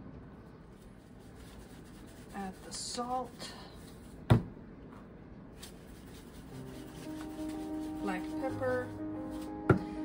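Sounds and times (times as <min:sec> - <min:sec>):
soft background music: 0:05.9 - 0:10.0.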